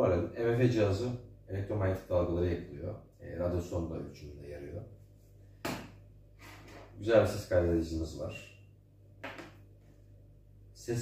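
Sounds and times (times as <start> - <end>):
faint low hum: 0.0 - 11.0
object clacking on wooden table: 9.2 - 9.6.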